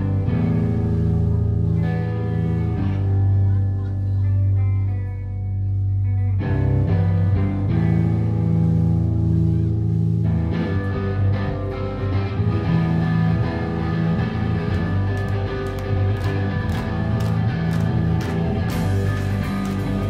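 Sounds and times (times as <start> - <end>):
live rock band playing: 10.1 - 20.0.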